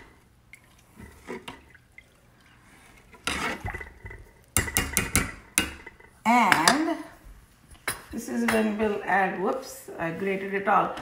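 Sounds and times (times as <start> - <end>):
metal spoon stirring in saucepan: 0.6 - 7.1.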